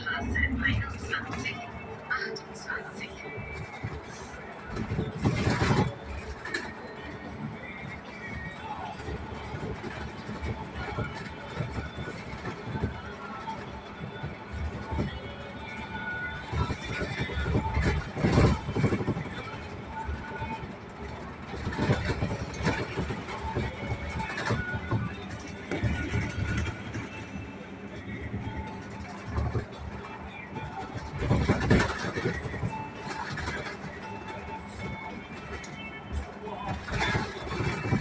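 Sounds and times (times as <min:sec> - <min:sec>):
bus engine and road rumble: 0:00.0 - 0:38.0
music playing: 0:00.0 - 0:38.0
voices: 0:00.0 - 0:38.0
rattles and thumps: 0:03.3 - 0:38.0.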